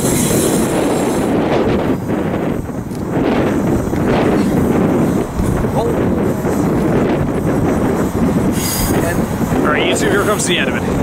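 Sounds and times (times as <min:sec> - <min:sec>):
train wheels rumbling on rail: 0:00.0 - 0:11.0
brief high-pitched hiss: 0:08.5 - 0:09.0.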